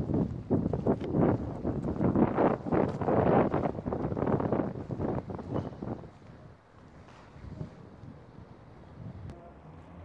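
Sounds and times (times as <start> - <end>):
wind buffeting microphone: 0.0 - 9.4.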